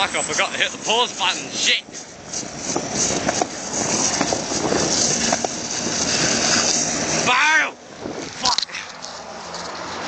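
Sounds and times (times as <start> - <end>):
wind noise: 0.0 - 8.6
skateboard wheels rumbling on asphalt: 0.0 - 10.0.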